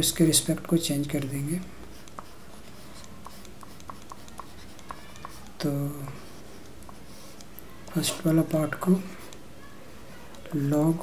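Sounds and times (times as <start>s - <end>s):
stylus tapping and scratching on tablet: 1.0s - 9.5s.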